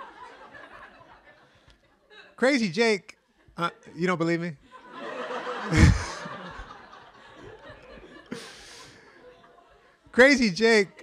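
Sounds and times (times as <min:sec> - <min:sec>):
audience laughing: 0:00.0 - 0:01.8, 0:04.6 - 0:10.1
person chuckling close to microphone: 0:05.7 - 0:06.6.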